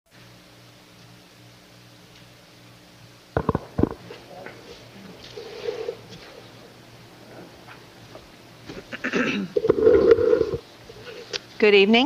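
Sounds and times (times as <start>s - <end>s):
low electrical hum: 0.1s - 12.0s
low thumps: 3.4s - 4.2s.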